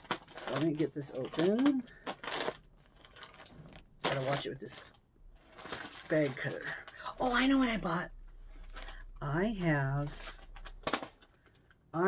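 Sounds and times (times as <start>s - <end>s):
plastic bag ripping: 0.0s - 11.7s
plastic bag crinkling: 0.0s - 12.0s.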